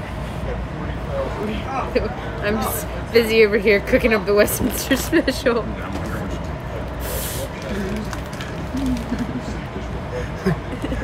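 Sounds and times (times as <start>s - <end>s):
quiet murmured words: 5.7s - 11.0s.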